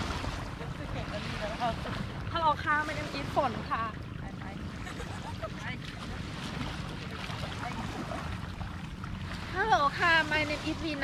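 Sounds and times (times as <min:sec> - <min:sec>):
small waves washing ashore: 0:00.0 - 0:11.0
wind rumbling on microphone: 0:00.0 - 0:11.0.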